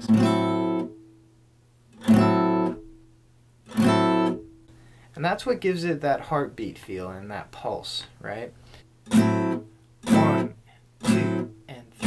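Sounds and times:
muted acoustic guitar chords: 0:00.0 - 0:07.8, 0:08.8 - 0:12.0.

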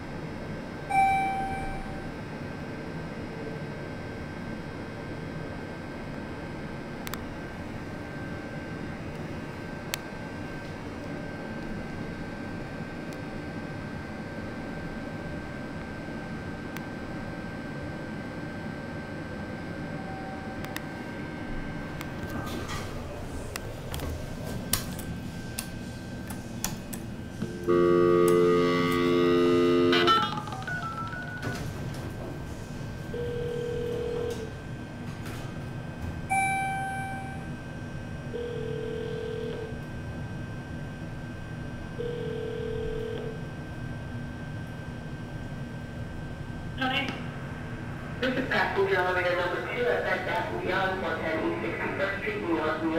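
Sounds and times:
steady background hum: 0:00.0 - 0:52.9
short electronic beeps: 0:00.9 - 0:02.0, 0:36.3 - 0:37.5
elevator buzz chime: 0:00.9 - 0:02.2, 0:19.8 - 0:20.8, 0:27.4 - 0:31.8, 0:33.1 - 0:34.5, 0:36.3 - 0:37.6, 0:38.3 - 0:39.8, 0:42.0 - 0:43.4.

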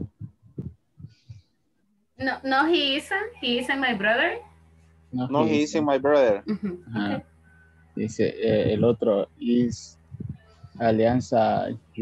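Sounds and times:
low muffled thumps: 0:00.0 - 0:01.4, 0:08.0 - 0:12.0.

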